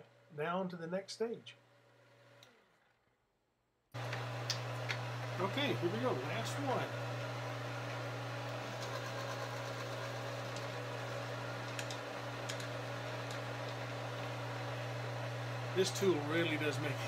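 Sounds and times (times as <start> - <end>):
motor humming: 4.0 - 17.0.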